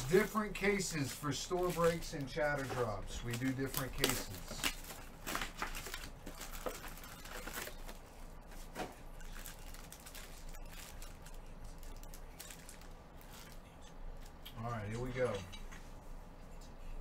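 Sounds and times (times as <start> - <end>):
foil packs crinkling: 0.0 - 13.8.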